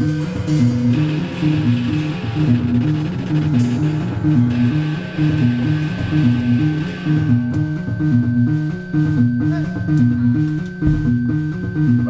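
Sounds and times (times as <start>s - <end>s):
band playing amplified riff: 0.0s - 10.7s.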